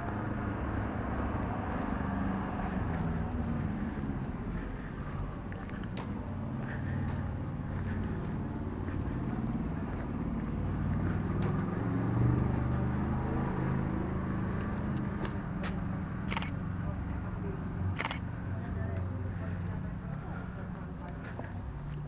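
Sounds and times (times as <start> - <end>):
engine running with low hum: 0.0 - 22.0.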